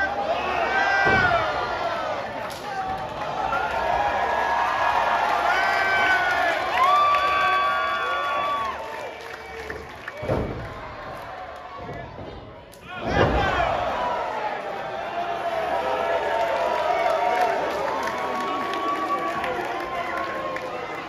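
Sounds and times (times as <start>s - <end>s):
crowd shouting: 0.0s - 12.2s, 12.8s - 21.0s.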